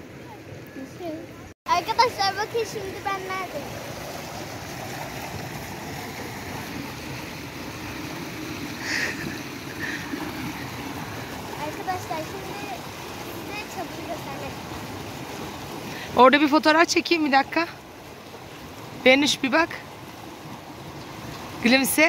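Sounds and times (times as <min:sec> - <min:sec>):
creek running over stones: 0:00.0 - 0:22.0.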